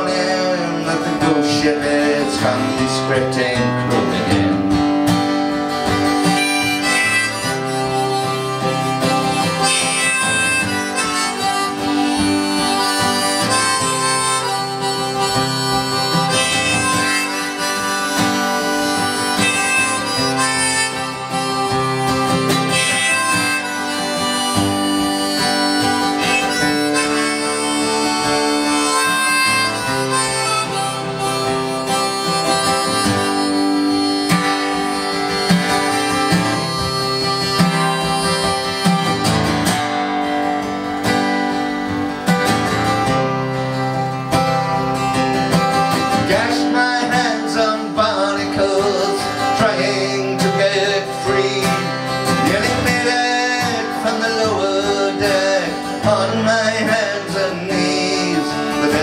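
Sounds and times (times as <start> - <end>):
acoustic guitar: 0.0 - 59.0
harmonica playing melody: 0.0 - 59.0.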